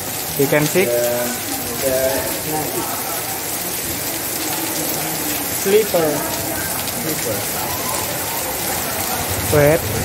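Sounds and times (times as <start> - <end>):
light rain falling: 0.0 - 10.0.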